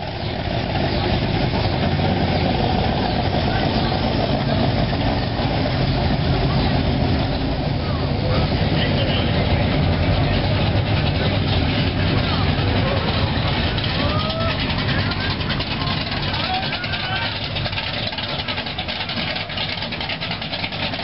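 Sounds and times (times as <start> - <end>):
car engines rumbling past: 0.0 - 21.0.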